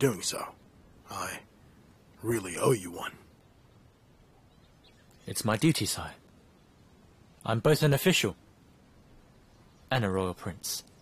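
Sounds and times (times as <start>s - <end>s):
man speaking: 0.0s - 1.5s, 2.2s - 3.3s, 5.2s - 6.2s.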